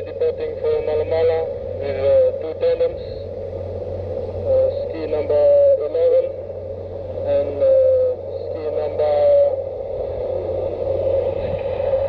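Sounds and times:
muffled voices speaking: 0.0 - 11.4
steady low hum: 0.0 - 12.0.

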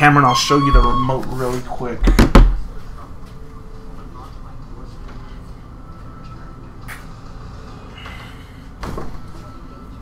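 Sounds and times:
knock on camera: 2.0 - 2.6.

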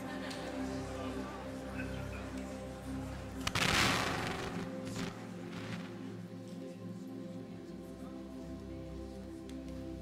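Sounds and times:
live worship music: 2.2 - 6.5
loud burst of noise: 3.5 - 6.0.

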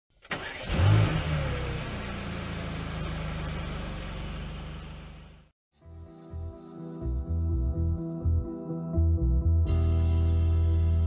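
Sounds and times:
car engine starting and idling: 0.1 - 5.5
ignition click: 0.2 - 0.8.

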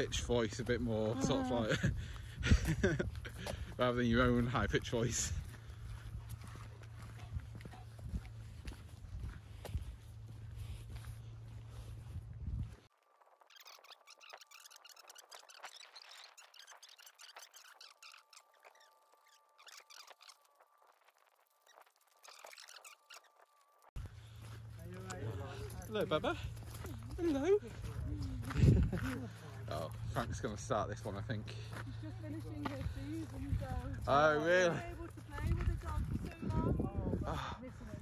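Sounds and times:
wind rumbling on microphone: 0.0 - 12.9, 27.0 - 29.2, 32.6 - 38.0.

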